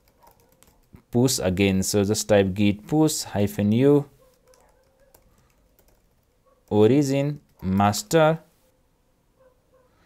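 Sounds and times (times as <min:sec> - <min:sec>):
computer keyboard keystrokes: 0:00.0 - 0:01.0, 0:04.3 - 0:06.8.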